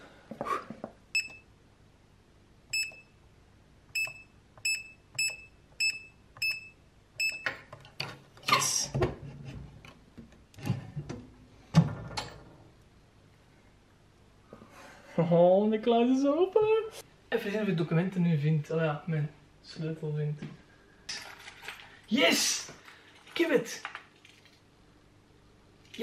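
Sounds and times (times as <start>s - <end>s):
keypad beeps: 1.2s - 1.5s, 2.7s - 3.1s, 4.0s - 7.6s.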